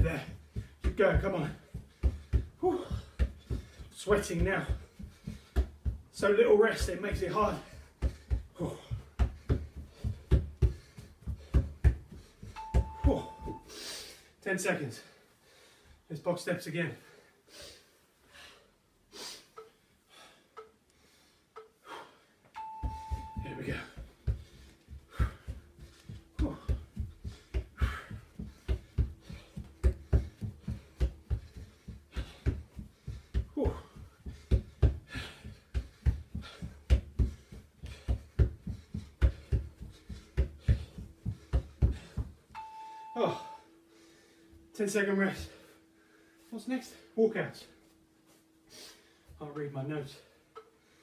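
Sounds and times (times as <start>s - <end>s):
footsteps on plastic step platform: 0.0s - 13.6s, 22.8s - 42.5s
electronic timer beeps: 12.6s - 13.7s, 22.6s - 23.8s, 42.5s - 43.8s.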